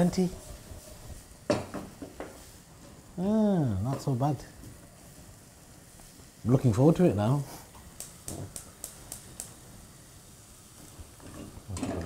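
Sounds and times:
food sizzling in a pan: 0:00.0 - 0:12.0
small crackles: 0:07.7 - 0:09.6.

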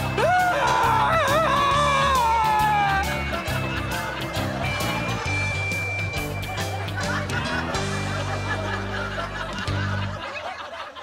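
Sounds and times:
background music with bass: 0:00.0 - 0:10.3
woman and man laughing: 0:06.5 - 0:11.0.

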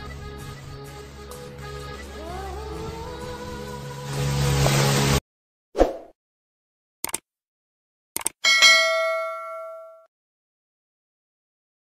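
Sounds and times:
mouse clicks: 0:07.0 - 0:07.2
notification bell ding: 0:08.4 - 0:10.1.

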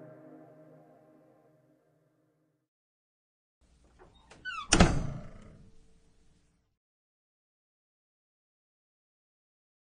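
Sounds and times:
door squeak: 0:04.0 - 0:05.9
door thudding shut: 0:04.3 - 0:05.7.

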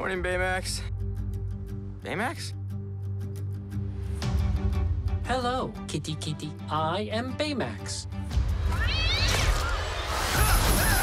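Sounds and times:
background music: 0:00.0 - 0:11.0
cartoon cat yowling and screeching: 0:08.7 - 0:11.0.

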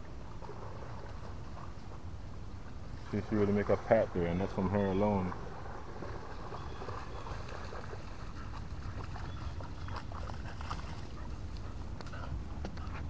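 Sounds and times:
rustling on creek bank: 0:00.0 - 0:13.0.

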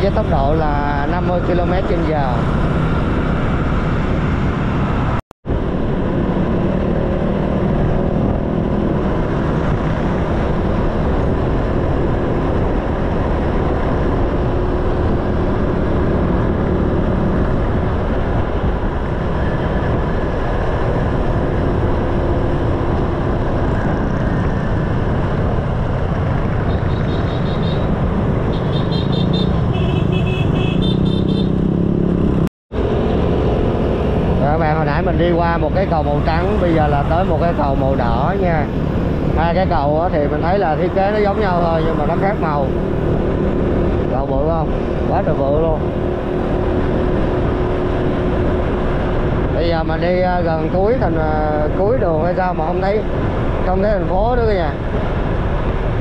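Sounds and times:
wind and road noise: 0:00.0 - 0:56.0.

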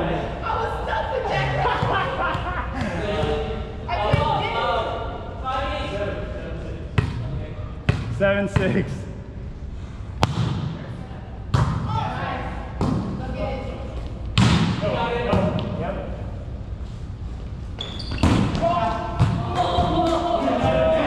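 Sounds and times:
players' voices: 0:00.0 - 0:09.3, 0:10.2 - 0:16.6, 0:18.3 - 0:21.0
volleyball smacks in gym: 0:10.2 - 0:10.8, 0:14.3 - 0:14.8.

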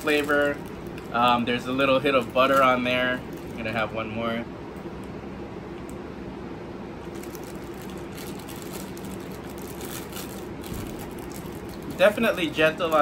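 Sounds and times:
plastic bag crinkling: 0:00.0 - 0:04.0, 0:07.0 - 0:13.0
low room hum: 0:00.0 - 0:13.0.

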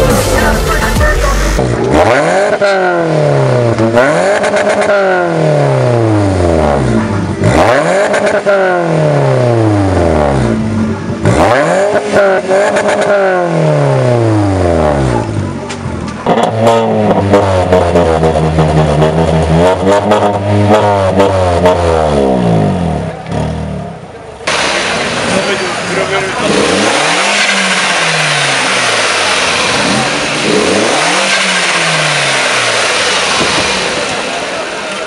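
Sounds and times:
car engine idling: 0:00.0 - 0:04.0, 0:22.5 - 0:35.0
car engine revving: 0:00.0 - 0:35.0.

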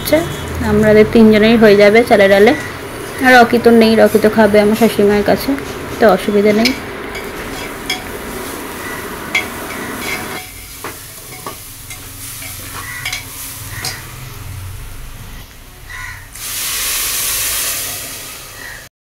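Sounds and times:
spoon stirring frying rice: 0:06.6 - 0:14.2
water hissing in hot pot: 0:08.1 - 0:15.1, 0:16.3 - 0:18.9.

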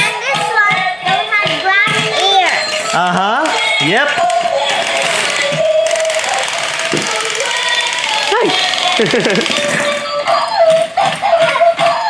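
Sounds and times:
toy clicking: 0:00.2 - 0:12.0
toy playing electronic melody: 0:01.2 - 0:12.0.

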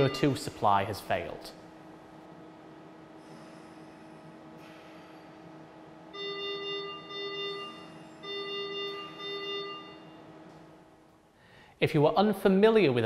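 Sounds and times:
ventilator alarm beeps: 0:00.0 - 0:01.3, 0:06.0 - 0:10.6.

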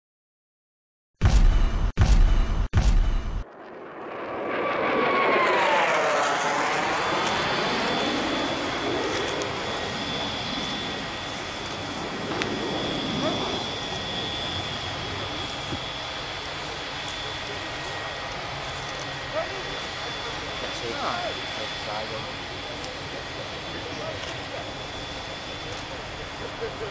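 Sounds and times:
turbine engine running: 0:02.7 - 0:26.9.

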